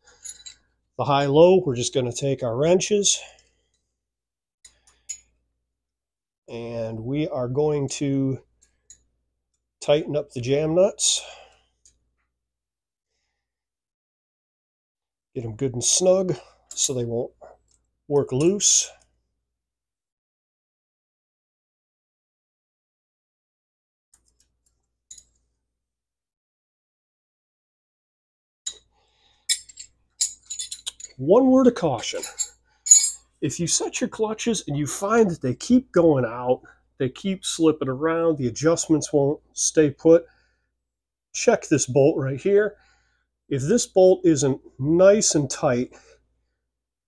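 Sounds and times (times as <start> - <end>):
metal wrench clinks: 0.1 - 0.6, 29.5 - 31.2, 32.2 - 33.3.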